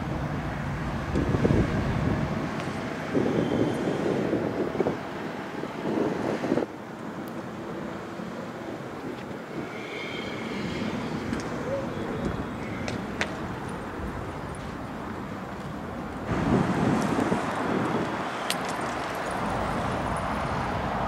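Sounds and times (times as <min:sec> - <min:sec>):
wind buffeting microphone: 0:00.0 - 0:06.8, 0:08.6 - 0:21.0.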